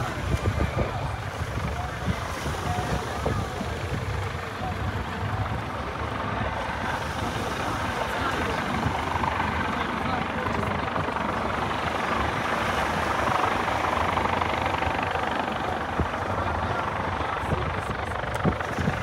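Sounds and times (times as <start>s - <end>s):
helicopter rotor drone: 0.0s - 19.0s
people's voices: 0.0s - 19.0s.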